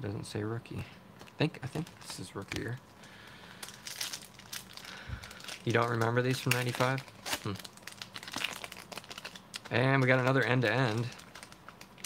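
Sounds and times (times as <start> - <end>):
foil wrapper crinkling: 1.4 - 12.0.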